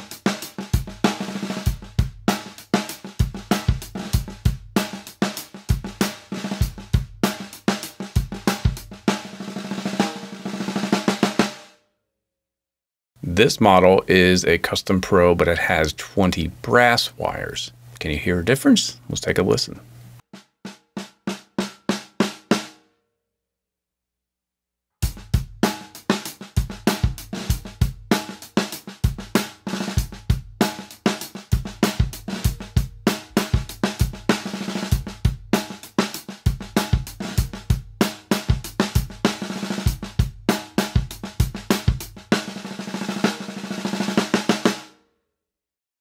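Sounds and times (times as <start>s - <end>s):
drum kit beat: 0.0s - 11.6s, 13.2s - 19.8s, 25.0s - 44.9s.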